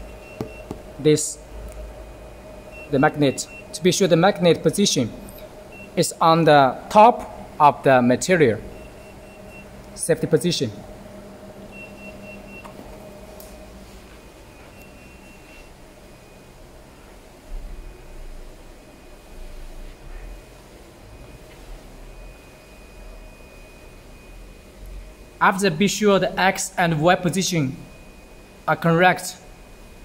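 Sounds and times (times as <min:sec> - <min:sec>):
printer electrical hum: 0:00.0 - 0:30.0.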